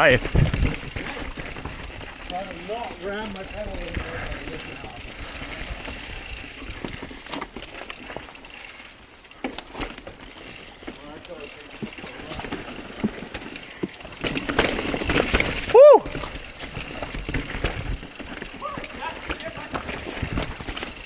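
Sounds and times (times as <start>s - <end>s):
bike rattling over rough ground: 0.0s - 21.0s
bike tyres rolling on dirt: 0.0s - 21.0s.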